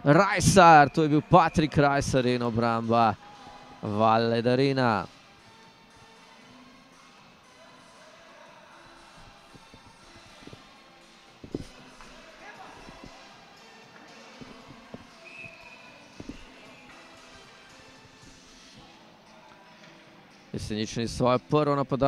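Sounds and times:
low murmur in arena: 7.6s - 17.2s.

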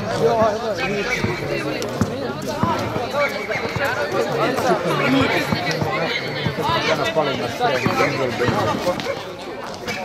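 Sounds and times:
people talking: 0.0s - 10.0s
basketball bouncing on hard court: 2.0s - 3.9s.

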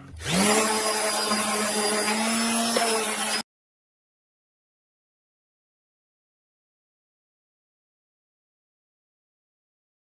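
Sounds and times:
orbital sander on wood: 0.1s - 3.4s.

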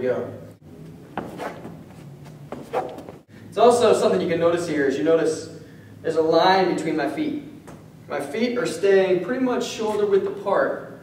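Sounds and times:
sneakers scuffing on hard floor: 1.1s - 3.3s.

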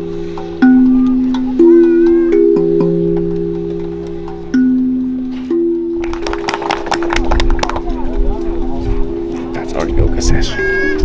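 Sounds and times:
steel hand drum notes: 0.0s - 10.1s
hand clapping: 5.9s - 8.2s.

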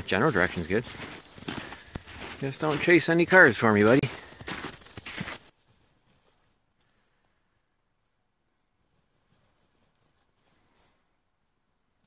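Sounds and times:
crunching footsteps in snow: 0.0s - 6.6s
outdoor noise: 0.0s - 12.0s.

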